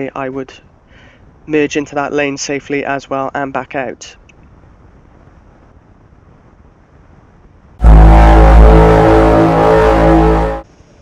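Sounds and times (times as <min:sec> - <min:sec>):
faint low background noise: 0:00.0 - 0:11.0
loud deep steady tone: 0:07.8 - 0:10.7.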